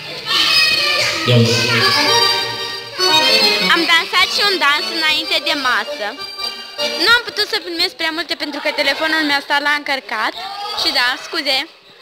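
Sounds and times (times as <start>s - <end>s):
children shouting and playing: 0.0s - 3.7s
live band with accordion: 1.1s - 7.9s.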